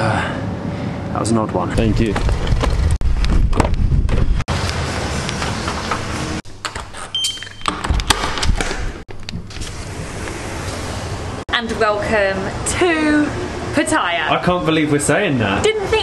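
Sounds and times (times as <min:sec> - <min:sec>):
vehicle and street noise: 0:00.0 - 0:06.8, 0:07.8 - 0:16.0
doors being pushed open: 0:02.2 - 0:10.4
sliding balcony door: 0:04.5 - 0:07.2, 0:07.9 - 0:11.4.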